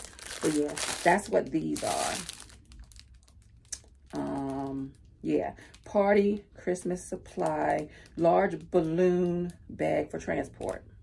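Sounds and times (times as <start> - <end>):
plastic wrapping crinkling: 0.0 - 5.9, 7.2 - 9.6.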